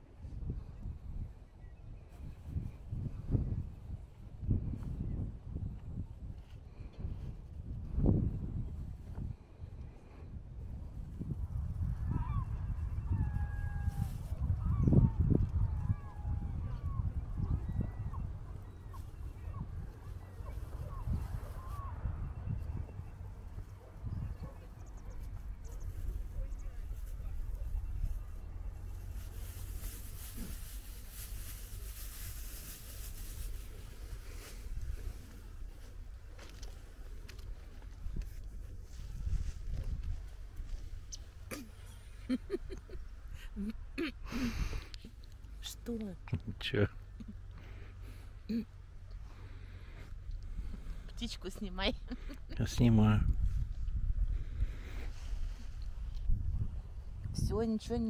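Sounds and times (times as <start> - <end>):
wind on microphone: 0.0 - 45.2, 49.3 - 58.0.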